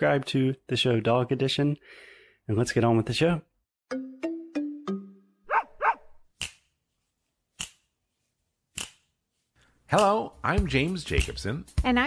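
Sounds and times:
dog barking: 0:05.5 - 0:06.2.

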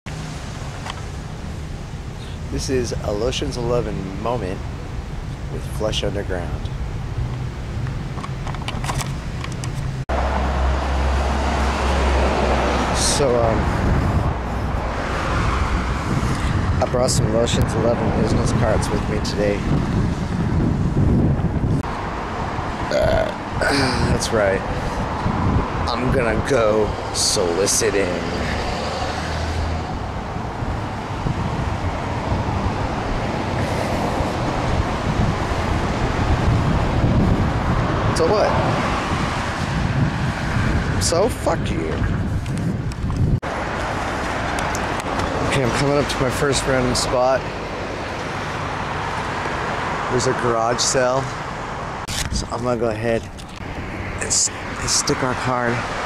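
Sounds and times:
outdoor background noise: 0:00.1 - 0:56.0
road traffic noise: 0:00.1 - 0:56.0
wind buffeting microphone: 0:00.4 - 0:56.0
steady low rumble: 0:00.6 - 0:27.7.

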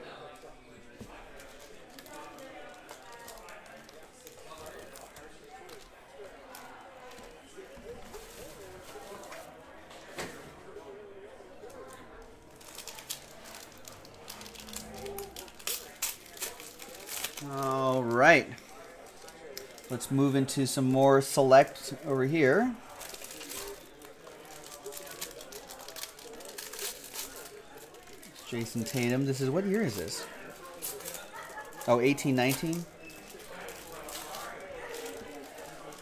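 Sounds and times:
faint background talk: 0:00.0 - 0:36.0
wrapper crinkling: 0:01.1 - 0:07.4, 0:11.6 - 0:36.0.

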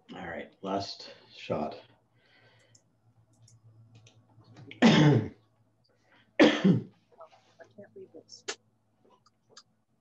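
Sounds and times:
person coughing: 0:04.8 - 0:05.4, 0:06.4 - 0:06.9.

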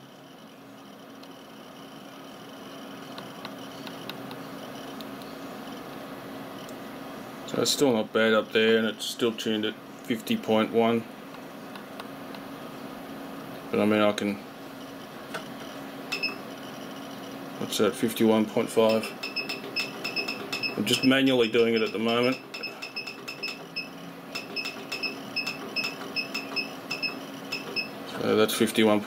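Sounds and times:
low hum with faint hiss: 0:00.0 - 0:29.0
high-pitched electronic beeps: 0:18.9 - 0:27.9.

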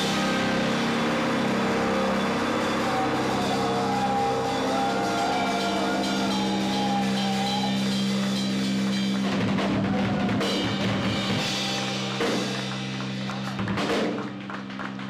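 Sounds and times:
heavy rock guitar and bass drone: 0:00.0 - 0:13.9.

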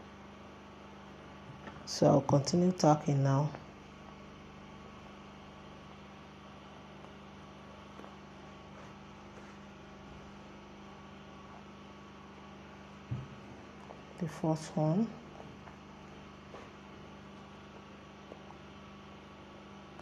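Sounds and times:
faint electrical hum: 0:00.0 - 0:20.0.

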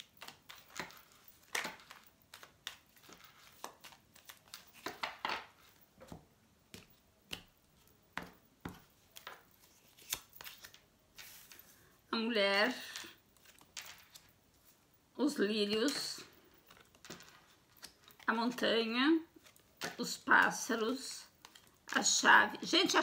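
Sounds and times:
cards being shuffled by hand: 0:00.0 - 0:11.8, 0:12.8 - 0:14.8, 0:15.6 - 0:18.6, 0:19.3 - 0:20.7, 0:21.3 - 0:22.1.

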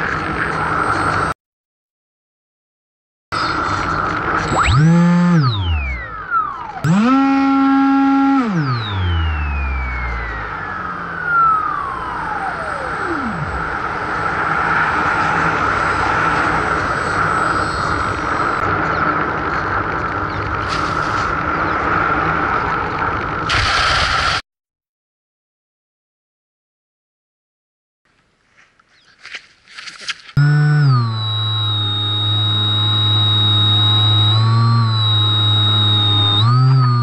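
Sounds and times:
electric motor whine: 0:03.4 - 0:22.9, 0:30.4 - 0:37.0
rush of air: 0:23.5 - 0:24.4.

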